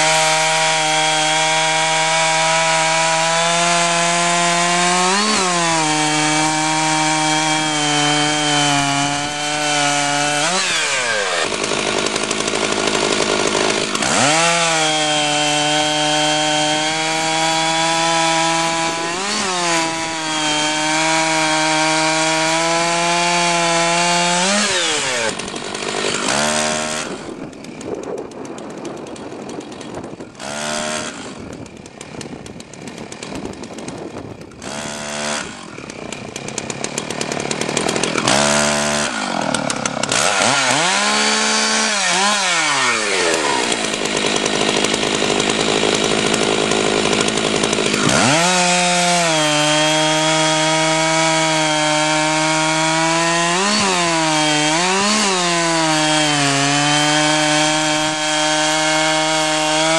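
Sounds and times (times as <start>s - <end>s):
chainsaw cutting log: 0.0s - 59.9s.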